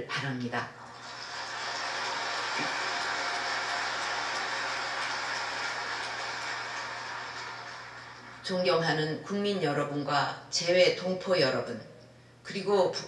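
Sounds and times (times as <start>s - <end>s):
audience applauding: 0.9s - 8.5s.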